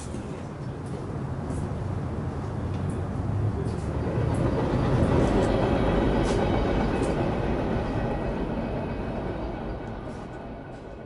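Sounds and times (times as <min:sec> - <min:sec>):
freight train rumbling: 0:00.0 - 0:11.0.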